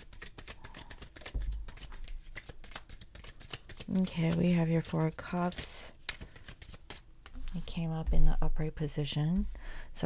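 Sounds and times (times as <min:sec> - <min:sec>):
cards being shuffled: 0:00.0 - 0:07.7.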